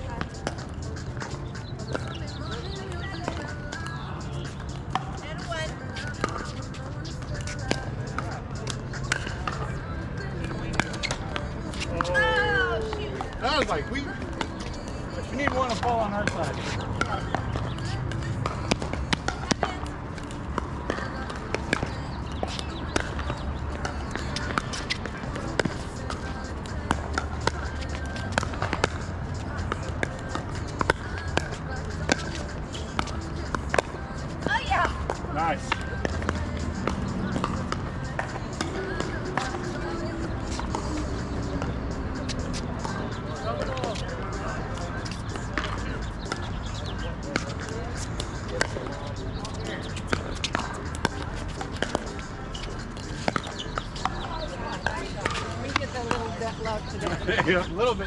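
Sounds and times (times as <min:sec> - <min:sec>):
background voices: 0:00.0 - 0:58.0.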